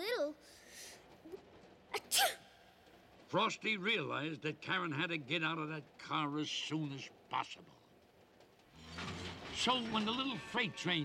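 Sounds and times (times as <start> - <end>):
girl sneezing: 1.9 - 2.5.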